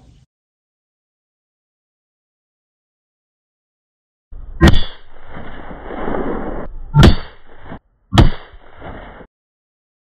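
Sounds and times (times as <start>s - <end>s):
revolver shots: 6.9s - 8.6s.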